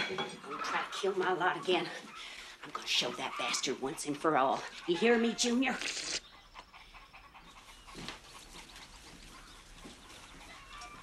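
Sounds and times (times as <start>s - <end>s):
man slurping and gulping stew: 5.8s - 6.3s.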